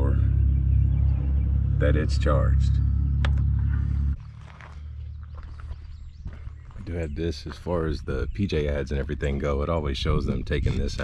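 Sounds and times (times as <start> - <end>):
vehicle engine idling: 0.0 - 7.7
quiet outdoor background: 0.0 - 11.0.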